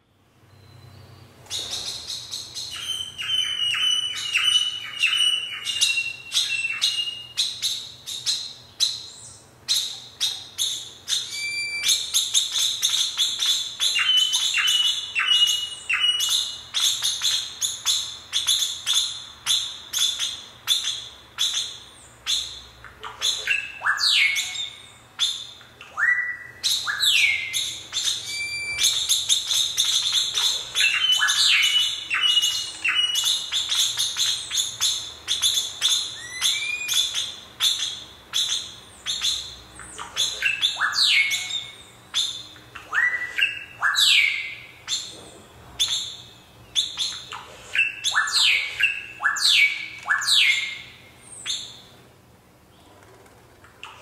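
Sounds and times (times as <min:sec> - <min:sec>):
bird-like chirps and squawks: 0:01.5 - 0:51.8.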